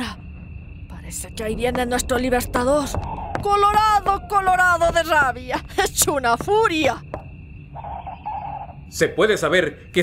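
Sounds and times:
low background rumble: 0.0 - 7.8
crickets chirping: 0.0 - 10.0.

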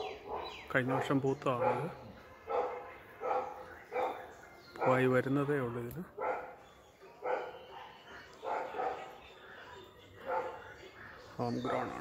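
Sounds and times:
dog barking: 0.0 - 5.1, 6.2 - 9.2, 10.2 - 10.8, 11.6 - 12.0.

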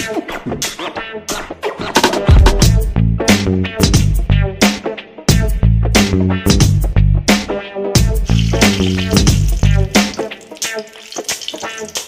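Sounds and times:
background music: 0.0 - 12.0
chilli sizzling in hot oil: 8.2 - 12.0.

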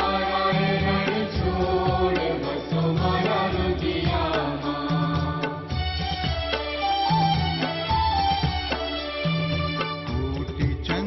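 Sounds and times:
chanted devotional vocals: 0.0 - 5.9
regular percussive beat: 0.0 - 11.0.

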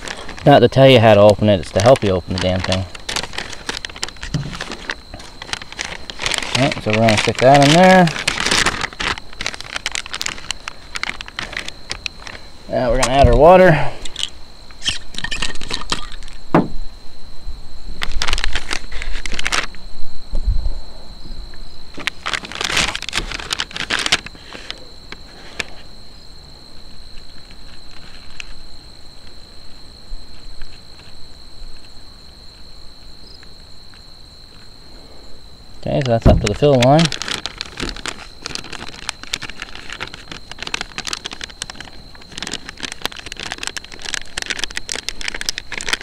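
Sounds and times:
plastic sleeve crinkling: 0.0 - 13.4, 18.0 - 19.8, 21.9 - 24.8, 36.0 - 46.0.

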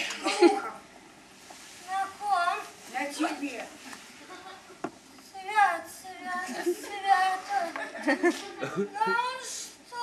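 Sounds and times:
woman speaking: 2.2 - 3.8.

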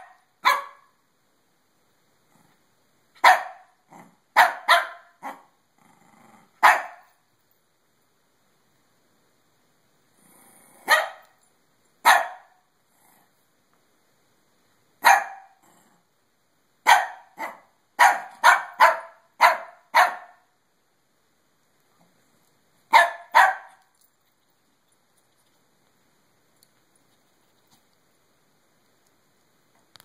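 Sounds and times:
small dog barking: 0.0 - 1.0, 3.2 - 5.5, 6.6 - 7.2, 10.8 - 11.4, 12.0 - 12.6, 15.0 - 15.6, 16.8 - 20.5, 22.9 - 23.9.

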